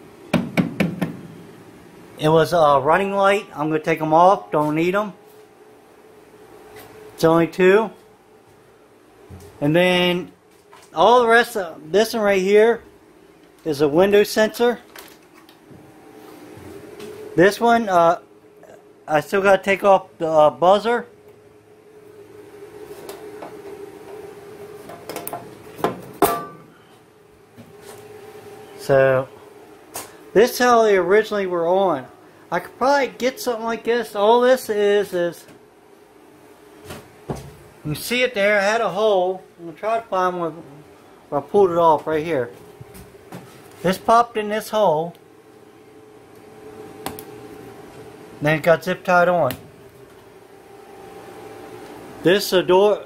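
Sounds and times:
faint steady hum: 0:00.0 - 0:53.0
sharp knocks on metal panel: 0:00.3 - 0:01.3
sharp metallic knocks: 0:25.0 - 0:26.7.

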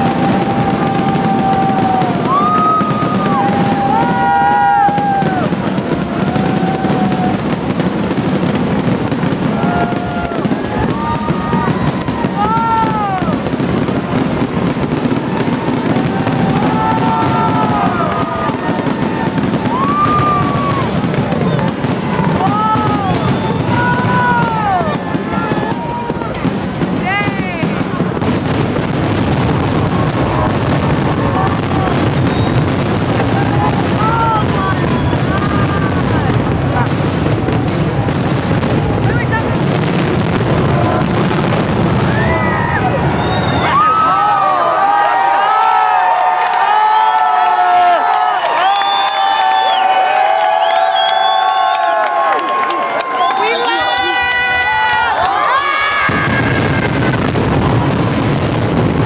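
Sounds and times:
people crying out: 0:00.0 - 0:07.6, 0:09.4 - 0:13.6, 0:15.0 - 0:21.6, 0:22.2 - 0:26.3, 0:51.8 - 0:58.0
fireworks bursting and crackling: 0:00.0 - 0:59.0.

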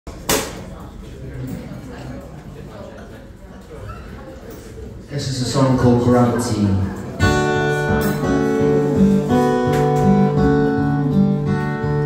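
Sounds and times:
low murmur of voices: 0:00.1 - 0:12.0.

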